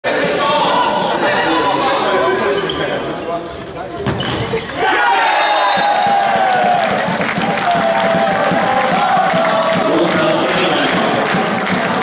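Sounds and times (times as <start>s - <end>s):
echoing voices in a hall: 0.0s - 12.0s
shoe squeaks on court: 1.9s - 3.4s, 4.0s - 4.6s.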